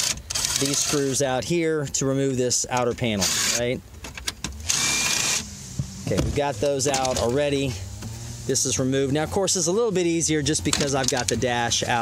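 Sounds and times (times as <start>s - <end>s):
cordless drill whirring: 0.0s - 1.1s, 3.2s - 3.6s, 4.6s - 5.5s
tool handling clicks: 10.7s - 11.5s.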